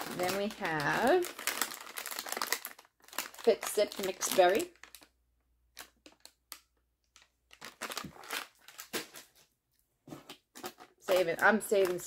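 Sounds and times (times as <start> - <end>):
plastic packaging crinkling: 0.0 - 9.5, 10.2 - 12.0.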